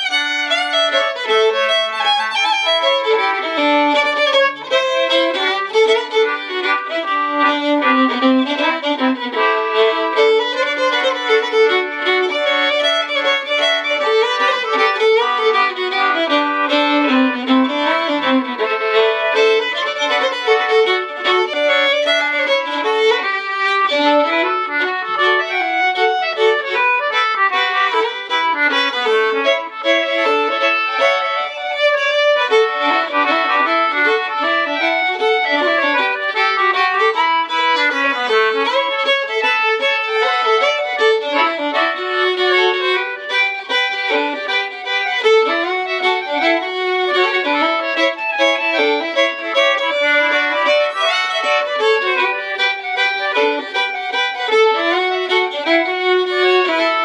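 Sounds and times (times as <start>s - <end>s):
concertina: 0.0s - 57.0s
fiddle melody: 0.0s - 57.0s.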